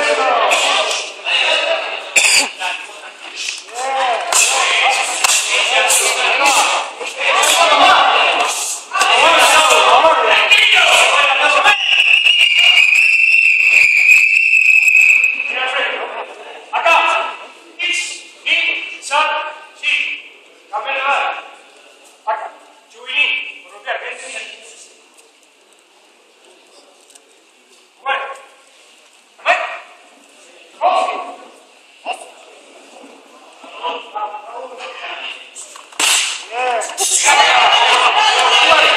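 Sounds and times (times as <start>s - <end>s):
referee shouting commands: 3.7s - 12.0s
long high-pitched whistle blast: 11.7s - 15.5s.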